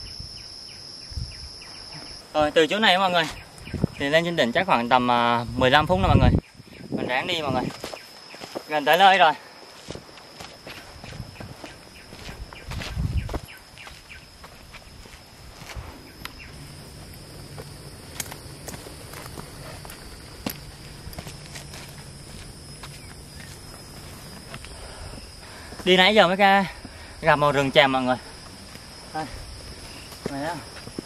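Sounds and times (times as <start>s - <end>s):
steady high-pitched tone: 0.0s - 31.0s
footsteps on dirt and stone: 7.6s - 16.3s, 17.1s - 25.9s, 29.7s - 31.0s.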